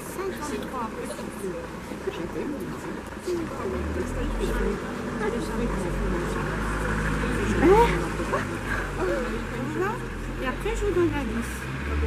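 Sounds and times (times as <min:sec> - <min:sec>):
woman and children talking quietly: 0:00.0 - 0:11.8.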